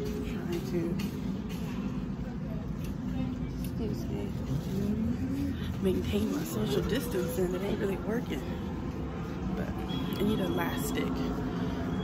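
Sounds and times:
faint voices: 0.0 - 12.0
store background rumble: 0.0 - 12.0.

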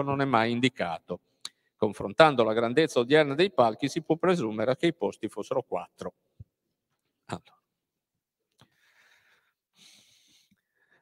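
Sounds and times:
faint breath drawn in: 8.6 - 11.0.

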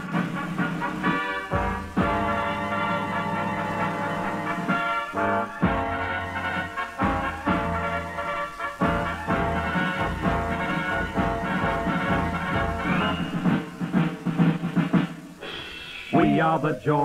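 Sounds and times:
drum hits: 0.0 - 3.9, 4.6 - 7.9, 8.8 - 15.5
swing theme music with horns: 0.0 - 17.0.

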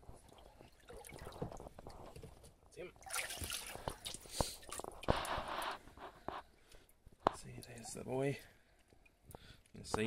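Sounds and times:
water splashing and dripping: 0.0 - 2.3, 3.0 - 5.8.

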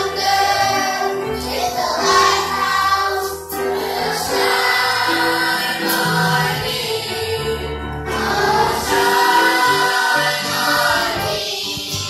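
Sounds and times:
children's choir singing: 0.0 - 12.0.

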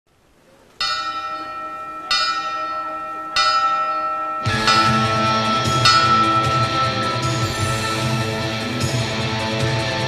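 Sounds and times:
ring bell struck: 0.8 - 9.3.

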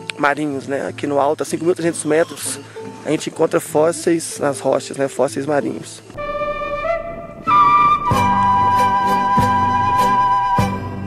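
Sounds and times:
flute-like wind instrument: 6.2 - 11.0.

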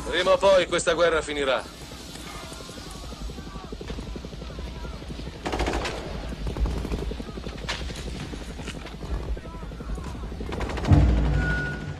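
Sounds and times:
helicopter rotors chopping: 0.0 - 11.9
gunfire bursts: 2.3 - 8.4, 10.2 - 11.9.

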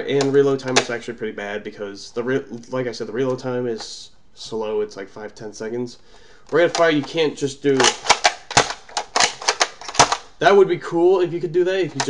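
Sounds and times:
toy blaster plastic clicks: 7.8 - 10.3.

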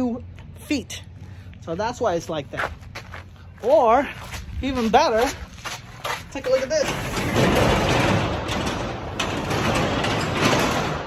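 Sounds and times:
roller clicks: 6.4 - 11.0
garage door rolling up: 6.7 - 11.0.

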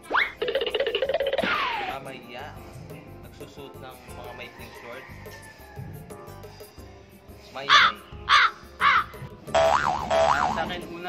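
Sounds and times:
crow cawing: 7.7 - 10.4
wobbling cartoon boing tone: 9.6 - 10.8.

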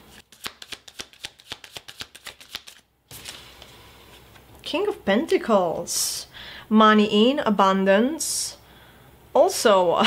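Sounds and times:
cards being shuffled: 0.1 - 4.5.

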